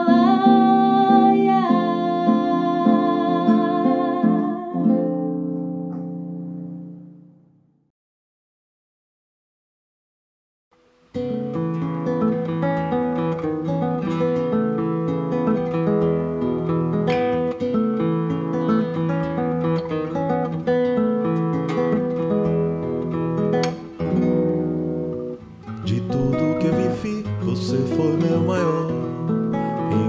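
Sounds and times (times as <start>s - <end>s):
classical guitar playing: 0.0s - 7.8s, 10.8s - 30.0s.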